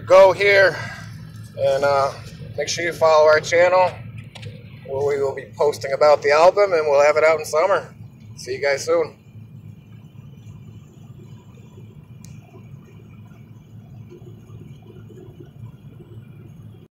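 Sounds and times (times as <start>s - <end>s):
car driving cabin rumble: 0.0s - 16.9s.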